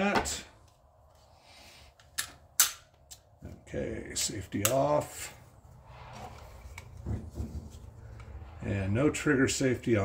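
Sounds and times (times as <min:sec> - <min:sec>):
pistol slide clacking: 0:02.2 - 0:03.2.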